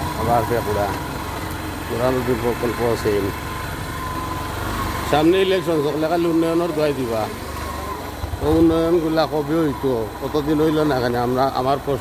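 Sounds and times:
small engine idling: 0.0 - 12.0.

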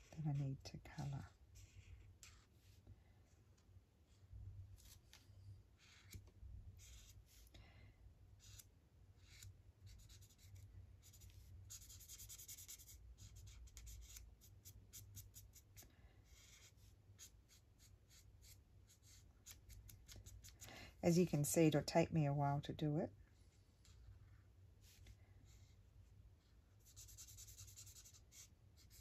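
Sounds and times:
marker scratching on paper: 0.9 - 2.8, 5.8 - 7.4, 8.4 - 20.6, 26.8 - 29.0.

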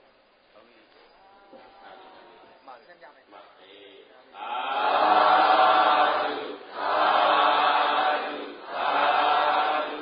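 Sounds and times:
group of voices chanting: 4.4 - 10.0.

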